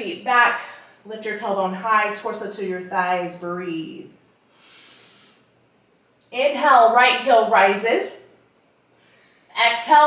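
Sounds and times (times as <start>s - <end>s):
faint breath: 4.5s - 5.5s, 8.9s - 9.5s.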